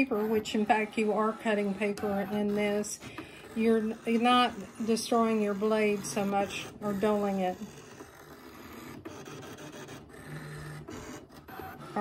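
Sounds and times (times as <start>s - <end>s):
cutting machine mechanical scraping: 0.0s - 12.0s.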